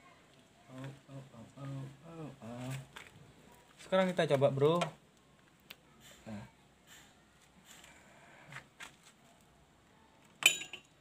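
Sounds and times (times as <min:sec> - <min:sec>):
sharp metallic clink: 0:10.4 - 0:10.9.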